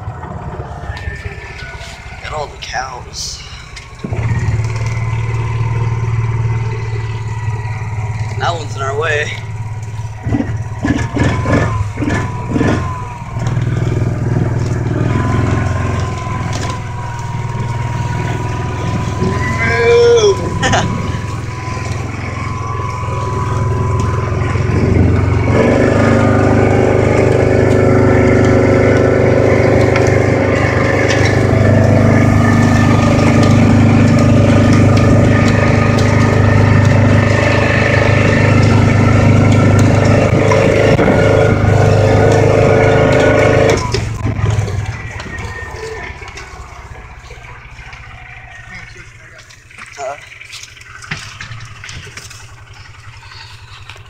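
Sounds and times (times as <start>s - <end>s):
utility vehicle engine running: 0.0s - 54.0s.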